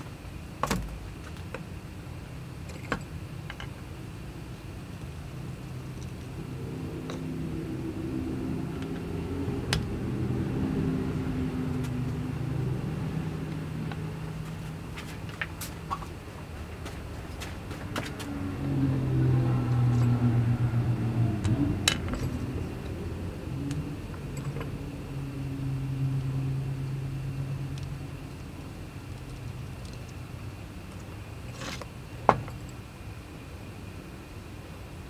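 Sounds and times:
low droning hum: 0.0s - 35.0s.

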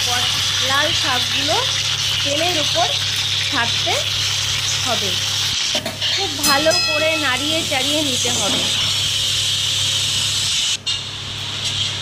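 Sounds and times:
spices sizzling in hot oil: 0.0s - 11.0s
person talking: 6.2s - 8.7s.

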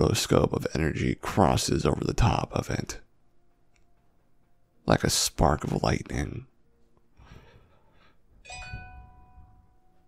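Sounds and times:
chime ringing: 8.4s - 10.0s.

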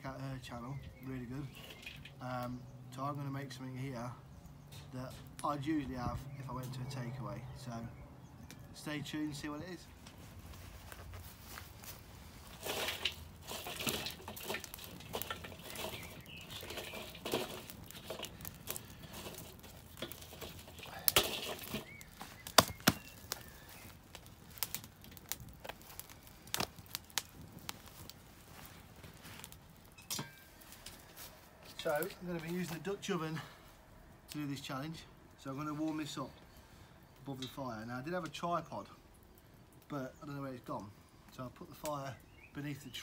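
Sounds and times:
wood fire crackling: 0.0s - 43.0s
log knocking onto burning wood: 12.4s - 32.8s.

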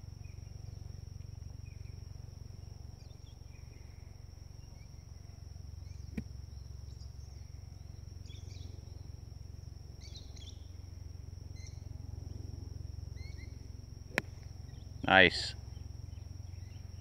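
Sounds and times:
low outdoor rumble: 0.0s - 17.0s
bird chirps: 10.0s - 10.7s, 13.2s - 13.6s
golf club striking ball: 14.1s - 14.5s.

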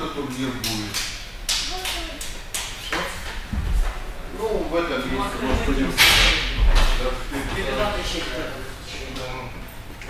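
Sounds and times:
heavy low thud: 3.4s - 4.1s.

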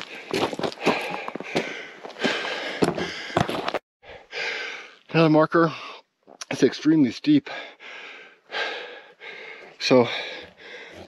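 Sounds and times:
footsteps crunching on scree: 0.0s - 3.8s
person breathing hard: 0.0s - 5.1s, 7.4s - 11.0s.

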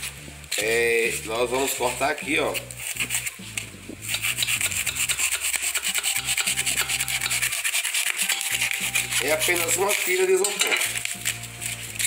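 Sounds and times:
knife sawing through styrofoam: 1.5s - 12.0s.

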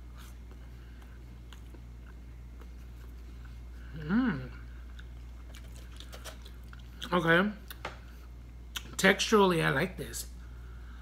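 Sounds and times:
person chewing: 0.0s - 3.8s, 4.6s - 7.8s
steady low hum: 0.0s - 11.0s
person humming mm: 3.9s - 4.7s.

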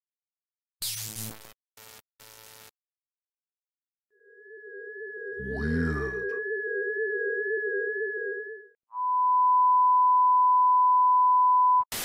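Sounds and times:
wavering low electronic tone: 4.2s - 10.0s
deep slowed-down voice-like growl: 5.4s - 6.4s.

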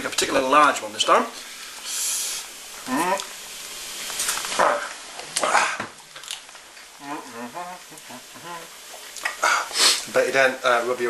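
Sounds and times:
faint steady hiss: 0.0s - 11.0s
person murmuring: 2.8s - 3.3s, 7.0s - 8.7s.

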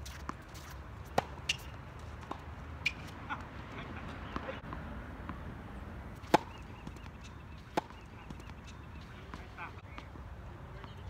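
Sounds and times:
tennis ball impacts: 0.0s - 11.0s.

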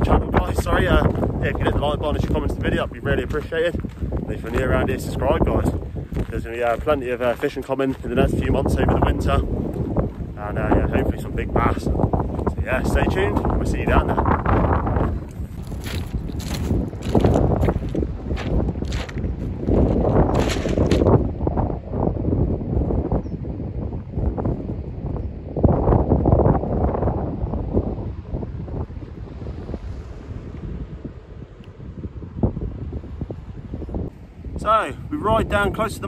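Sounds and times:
strong wind buffeting microphone: 0.0s - 36.0s.

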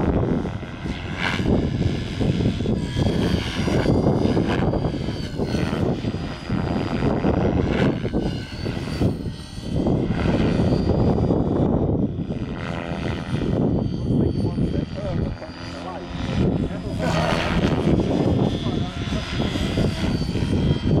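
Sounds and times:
model helicopter rotor noise: 0.0s - 21.0s
motor and gear whine: 0.0s - 21.0s.

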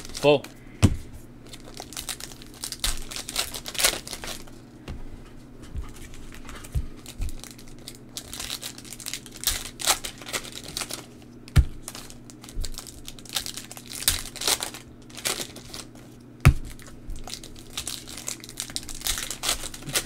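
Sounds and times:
plastic wrappers tearing and crinkling: 0.0s - 0.4s, 1.4s - 4.6s, 6.1s - 20.0s
cards thumping on table: 0.8s - 1.1s.

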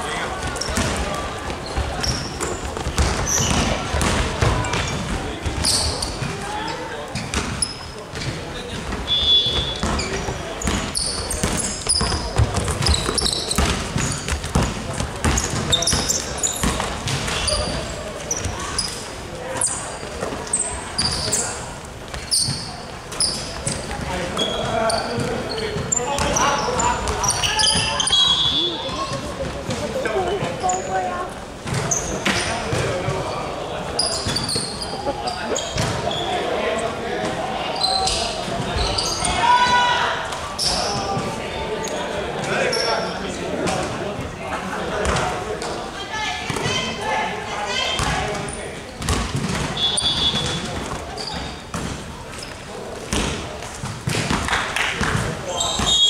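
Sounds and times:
basketball bouncing on wooden court: 0.4s - 1.0s, 1.7s - 6.3s, 7.3s - 18.5s, 49.0s - 52.0s.

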